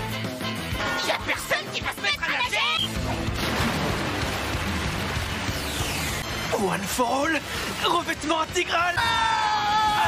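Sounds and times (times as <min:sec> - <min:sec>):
background music: 0:00.0 - 0:10.0
water splashing and churning: 0:03.0 - 0:08.7.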